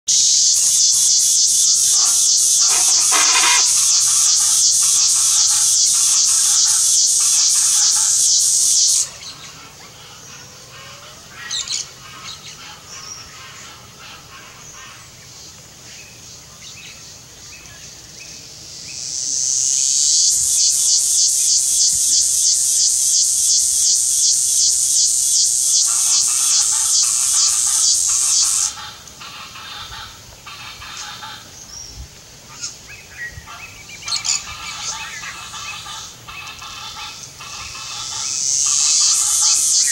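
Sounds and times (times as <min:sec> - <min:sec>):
insects buzzing: 0:00.1 - 0:39.9.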